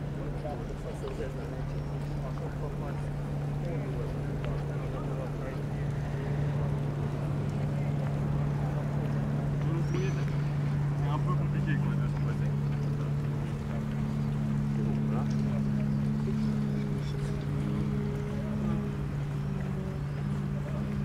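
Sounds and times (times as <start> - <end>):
boat engine humming: 0.0 - 21.0
faint voices: 0.0 - 21.0.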